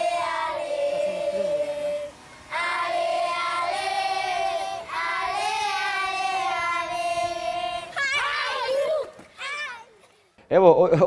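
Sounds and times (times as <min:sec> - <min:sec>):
children singing together: 0:00.0 - 0:09.0.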